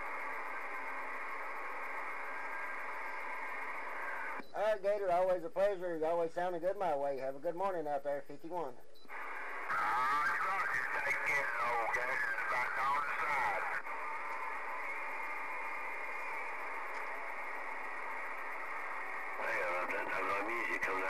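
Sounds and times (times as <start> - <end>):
radio band hiss: 0.0 - 21.0
garbled radio voice: 9.7 - 13.9, 19.4 - 21.0.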